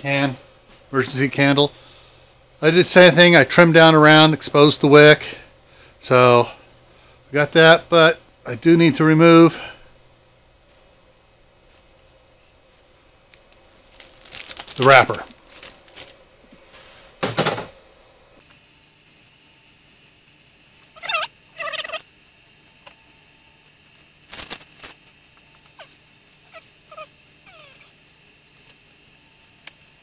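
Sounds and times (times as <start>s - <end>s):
paper wrapper crinkling and tearing: 13.3s - 16.2s, 24.3s - 25.0s.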